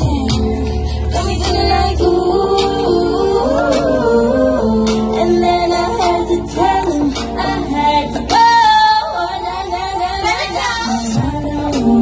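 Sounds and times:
backing music: 0:00.0 - 0:12.0
female vocal group singing: 0:00.0 - 0:12.0.

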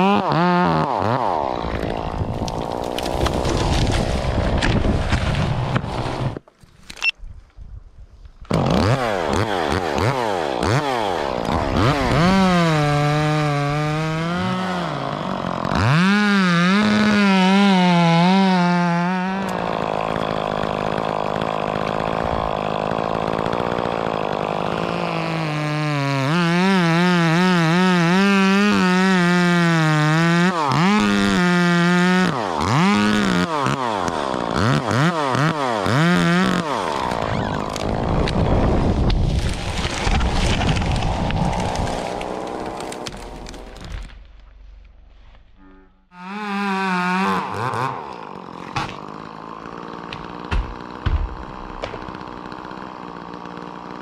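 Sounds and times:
chainsaw revving: 0:00.0 - 0:04.4, 0:08.5 - 0:44.1, 0:46.1 - 0:54.0.

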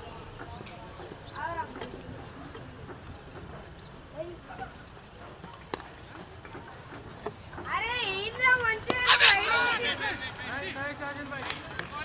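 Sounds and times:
players shouting: 0:08.0 - 0:11.1.

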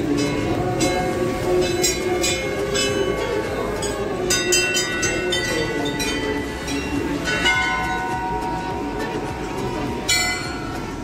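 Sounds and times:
crowd murmuring: 0:00.0 - 0:11.0
metal bells ringing: 0:00.0 - 0:11.0.

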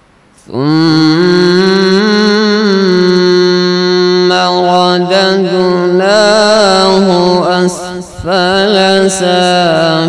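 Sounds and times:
man reciting melodically: 0:00.4 - 0:10.0.

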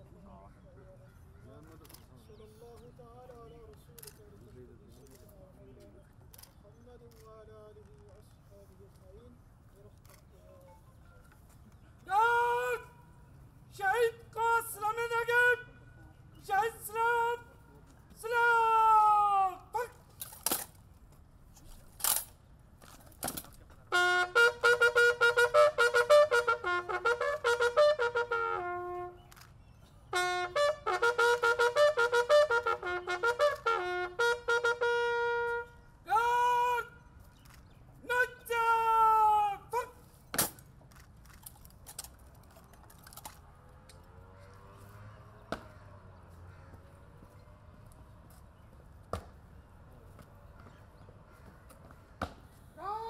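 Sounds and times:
shouted parade command: 0:12.0 - 0:15.8, 0:16.4 - 0:17.6, 0:18.2 - 0:20.0, 0:24.0 - 0:29.2, 0:30.2 - 0:37.0, 0:38.0 - 0:40.0, 0:52.8 - 0:53.0
bugle call: 0:23.9 - 0:29.4, 0:30.1 - 0:37.0.

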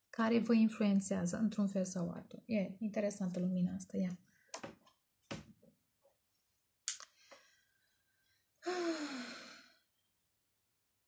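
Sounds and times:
woman sighing: 0:08.6 - 0:09.8.

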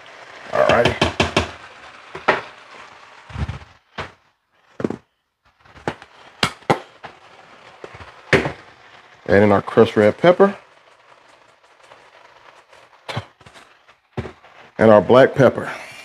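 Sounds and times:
faint sizzle: 0:00.0 - 0:16.0
spatula scraping in a skillet: 0:00.0 - 0:16.0.

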